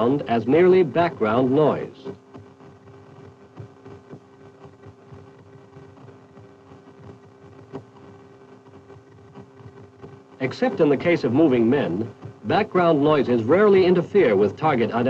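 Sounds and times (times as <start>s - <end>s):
faint irregular crackling: 0.0s - 15.0s
steady low hum: 0.0s - 15.0s.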